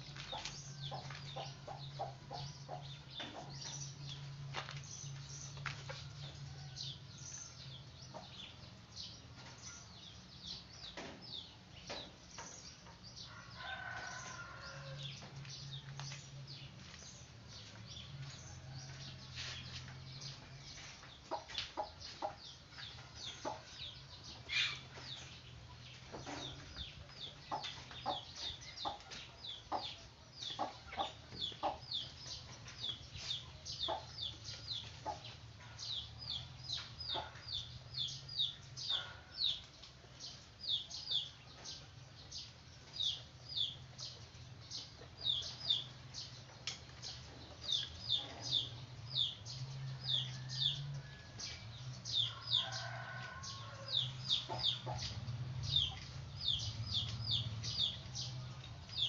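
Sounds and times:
small animals peeping: 0:17.1 - 0:59.0.

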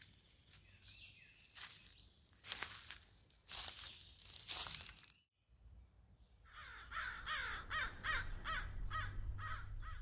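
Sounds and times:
bird harsh calls: 0:06.5 - 0:10.0.

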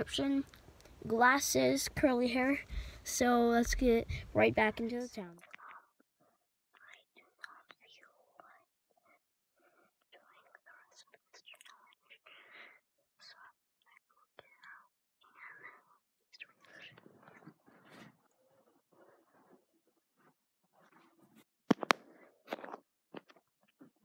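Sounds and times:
boy whispering: 0:00.0 - 0:06.0, 0:06.8 - 0:19.8.

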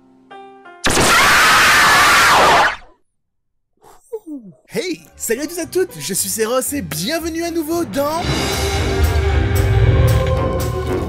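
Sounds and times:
loud distorted scream: 0:00.8 - 0:02.9.

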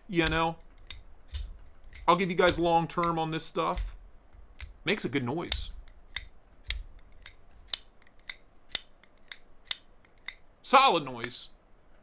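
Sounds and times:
pocket knife clicking open and shut: 0:00.2 - 0:03.9, 0:04.5 - 0:04.8, 0:05.5 - 0:10.4.

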